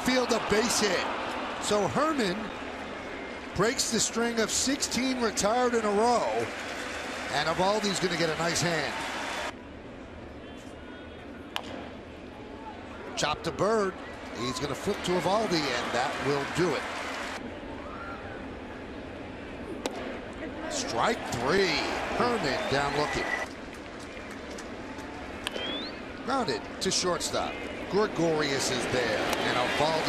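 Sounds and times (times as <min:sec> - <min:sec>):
ballpark crowd murmur: 0:10.2 - 0:30.0.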